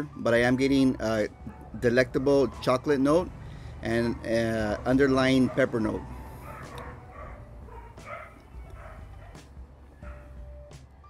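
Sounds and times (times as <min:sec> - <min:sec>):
dog barking faintly: 0:04.6 - 0:09.4.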